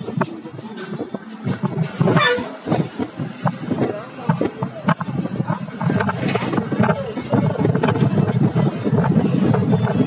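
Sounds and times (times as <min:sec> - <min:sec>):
vehicle interior rumble: 0:00.0 - 0:10.0
wind buffeting microphone: 0:00.0 - 0:10.0.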